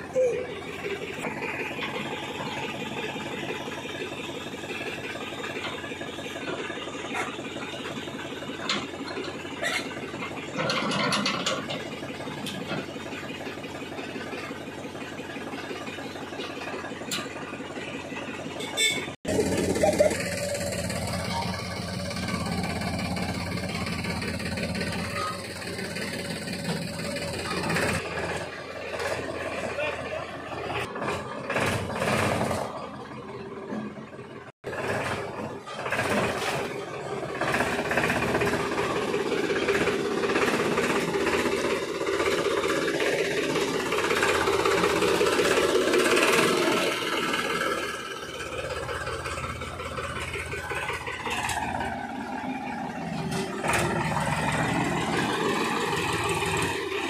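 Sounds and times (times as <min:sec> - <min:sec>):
people talking: 0:00.0 - 0:01.0, 0:19.3 - 0:20.6, 0:29.5 - 0:30.9
tractor diesel engine running: 0:00.0 - 0:57.0.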